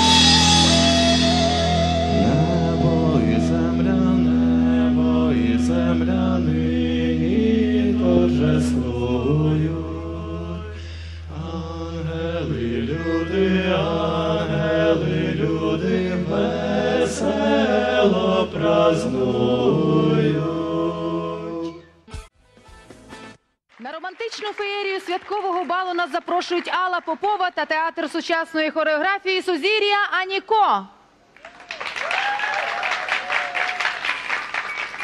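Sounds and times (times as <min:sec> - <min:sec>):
folk-rock band playing live: 0:00.0 - 0:04.4
low drone: 0:00.0 - 0:21.4
wordless chant-like singing: 0:02.1 - 0:21.8.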